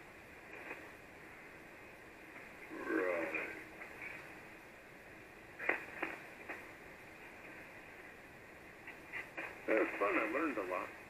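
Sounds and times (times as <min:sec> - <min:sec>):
radio band noise hiss: 0:00.0 - 0:11.0
short radio crackles: 0:05.6 - 0:06.6, 0:08.9 - 0:10.8.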